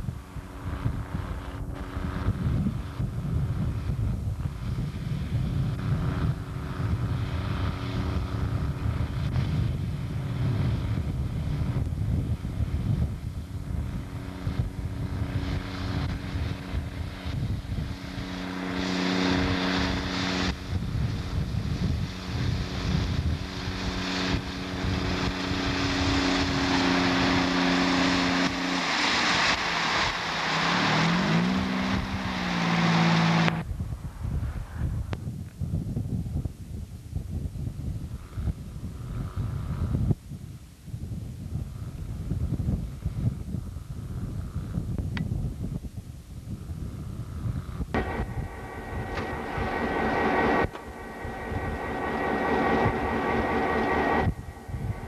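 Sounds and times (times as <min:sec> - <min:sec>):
diesel engine running: 0:00.0 - 0:34.1, 0:47.3 - 0:55.0
rushing hiss: 0:17.8 - 0:33.6, 0:48.0 - 0:55.0.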